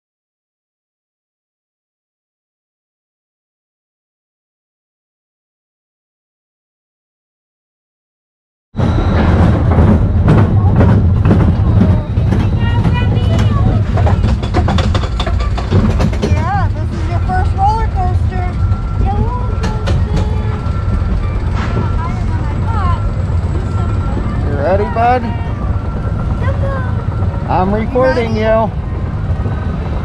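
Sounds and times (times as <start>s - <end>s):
roller coaster rumbling on track: 8.8s - 30.0s
clicks and rattles: 10.2s - 17.5s
people's voices: 10.2s - 30.0s.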